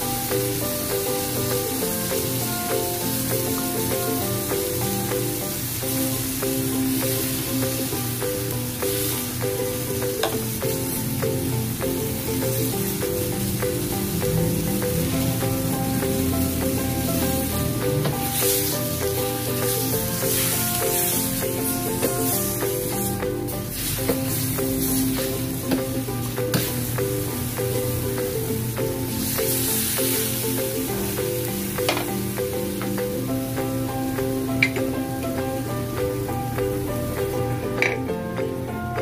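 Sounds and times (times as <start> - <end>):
meat sizzling in a wok: 0.0 - 38.7
background music: 0.0 - 39.0.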